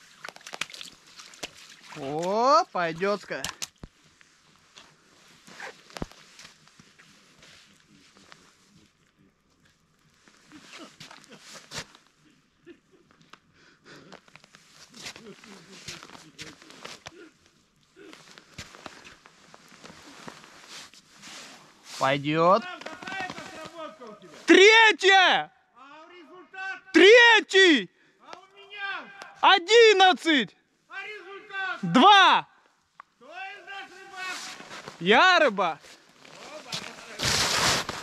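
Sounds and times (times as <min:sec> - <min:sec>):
boots stepping on icy snow: 0:00.2 - 0:02.3, 0:34.2 - 0:35.0, 0:35.8 - 0:38.0.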